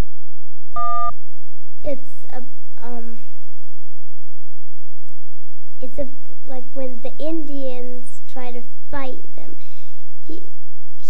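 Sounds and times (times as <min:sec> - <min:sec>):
short electronic beep: 0:00.8 - 0:01.1
child's voice: 0:01.8 - 0:03.4, 0:05.8 - 0:10.5.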